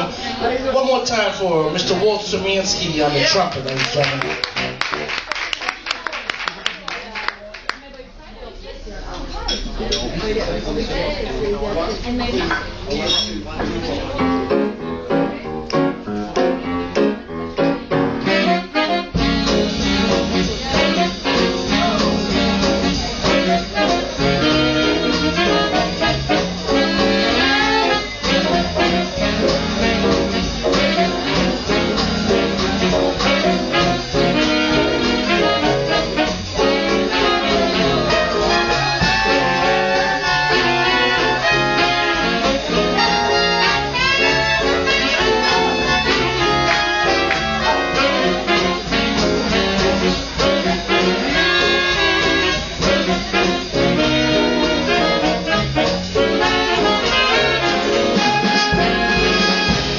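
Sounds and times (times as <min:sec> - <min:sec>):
big band playing swing jazz: 0:00.0 - 0:59.9.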